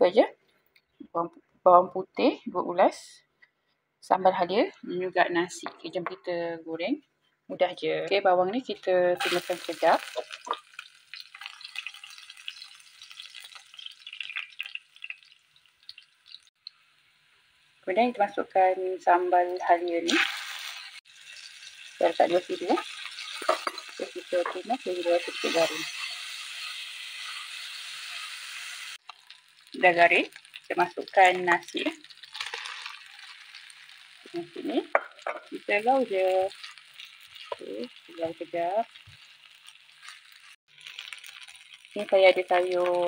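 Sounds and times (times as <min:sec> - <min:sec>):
paste sizzling in hot oil: 0:09.2 - 0:17.9, 0:19.0 - 0:43.0
spatula stirring in pan: 0:36.5 - 0:38.1.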